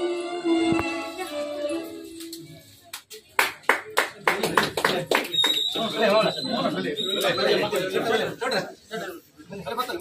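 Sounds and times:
hands clapping: 2.2 - 6.2.

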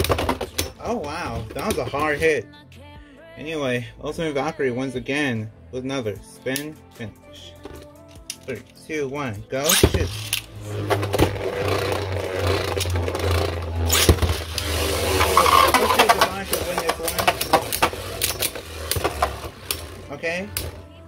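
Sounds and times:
spinning tops clacking: 9.7 - 20.8
steady low hum: 9.8 - 21.0.

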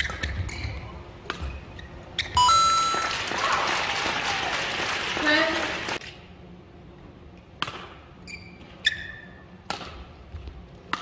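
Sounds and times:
racket hitting shuttlecock: 0.0 - 1.5, 7.6 - 8.0, 9.6 - 10.1
crowd cheering and clapping: 2.8 - 6.0.

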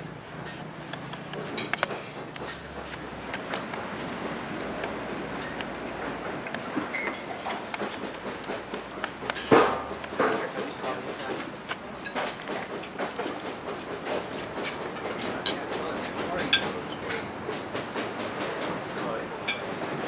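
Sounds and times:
diners chattering: 2.0 - 20.0
plates and cutlery clinking: 9.2 - 17.3, 19.4 - 19.8
loud knock: 9.4 - 10.4.

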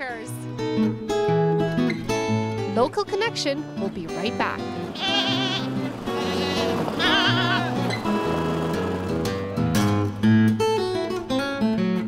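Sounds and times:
acoustic guitar music: 0.0 - 12.0
goats bleating: 4.7 - 8.9.

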